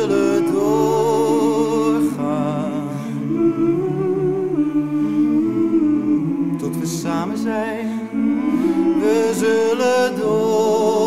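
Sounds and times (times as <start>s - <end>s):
vocal group humming chords: 0.0s - 11.0s.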